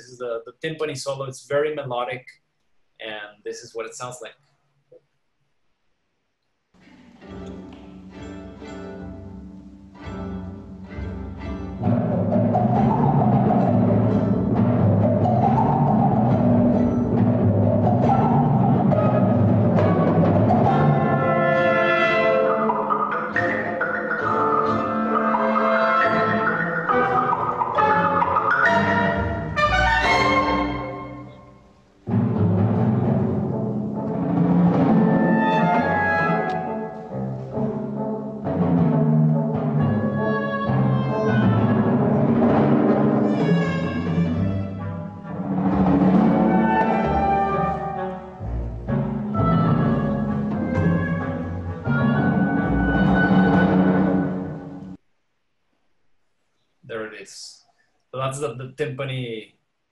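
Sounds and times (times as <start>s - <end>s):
chamber orchestra: 6.9s - 55.0s
timpani solo: 10.4s - 55.0s.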